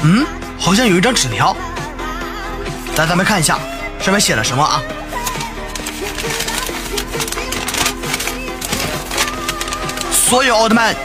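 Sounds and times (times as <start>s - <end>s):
background music with held notes: 0.0s - 11.0s
paper rustling as it is unfolded: 4.8s - 11.0s.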